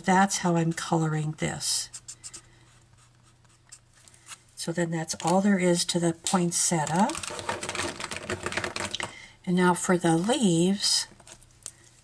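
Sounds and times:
marker scratching on cardstock: 0:01.8 - 0:03.9.

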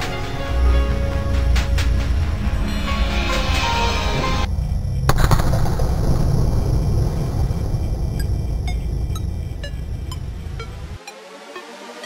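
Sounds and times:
low hall rumble: 0:00.0 - 0:11.0.

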